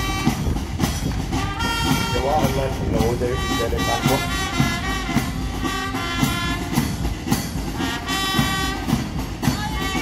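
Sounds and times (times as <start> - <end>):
held wind instrument chords: 0.0 - 10.0
marching drumbeat: 0.0 - 10.0.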